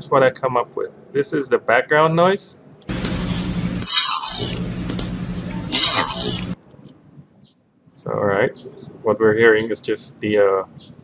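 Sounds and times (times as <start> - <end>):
low fan hum: 2.8 - 7.3.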